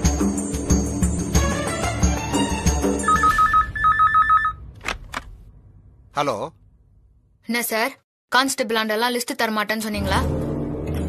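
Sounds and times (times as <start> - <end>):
background music: 0.0 - 3.8, 9.3 - 11.0
desk telephone ringing: 3.0 - 4.6.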